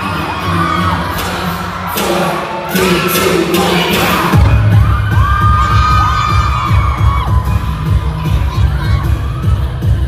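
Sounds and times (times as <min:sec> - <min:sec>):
crowd screaming and cheering: 0:00.0 - 0:10.0
dance-pop music with heavy bass: 0:00.0 - 0:10.0.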